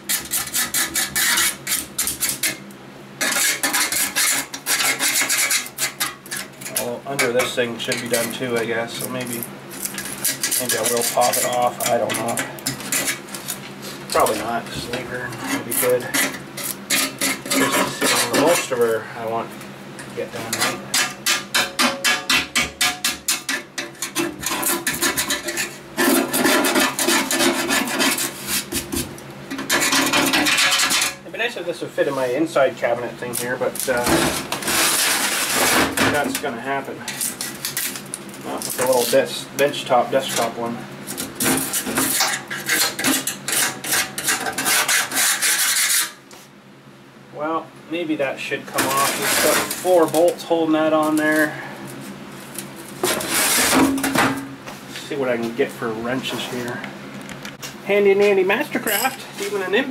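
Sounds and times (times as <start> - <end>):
hand tool scraping rusty steel: 0.0 - 2.6, 3.2 - 8.4, 9.2 - 18.8, 20.4 - 28.9, 29.6 - 31.2, 41.4 - 46.2, 48.7 - 50.4, 53.0 - 54.0.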